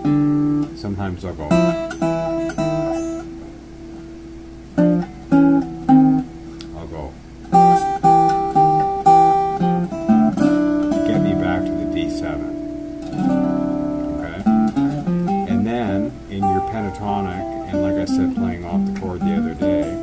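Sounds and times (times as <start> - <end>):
fingerpicked blues guitar: 0.0 - 20.0.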